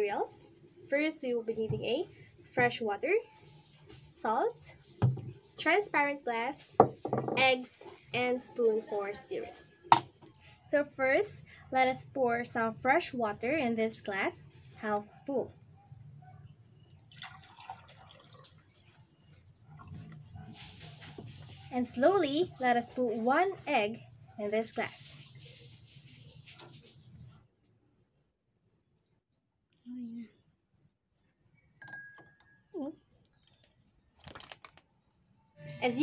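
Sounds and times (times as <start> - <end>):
woman speaking: 4.2 - 4.7, 7.4 - 9.6, 10.7 - 15.5, 21.7 - 25.0, 35.8 - 36.0
water pouring into a glass: 16.9 - 19.0
crackling rustle: 33.4 - 34.9
background music: 35.6 - 36.0.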